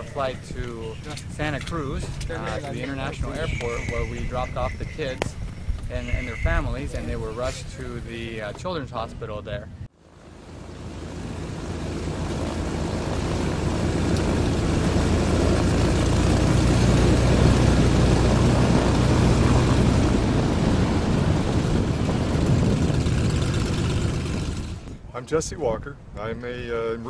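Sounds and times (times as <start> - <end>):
twin propeller plane engines: 0.0 - 9.2, 10.0 - 25.0.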